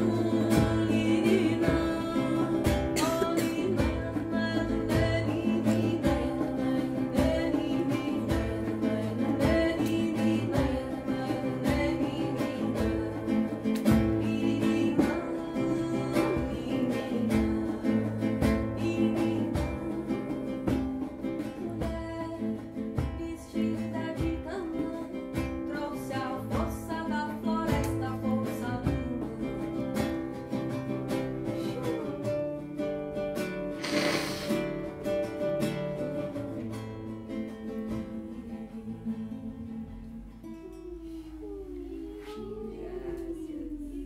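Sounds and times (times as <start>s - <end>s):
person singing: 0.0s - 32.6s, 33.7s - 34.8s, 36.0s - 44.0s
acoustic guitar strumming: 0.0s - 43.0s.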